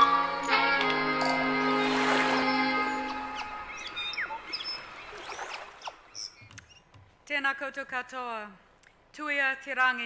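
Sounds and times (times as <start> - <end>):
bird chirps and whistles: 2.5 - 6.8.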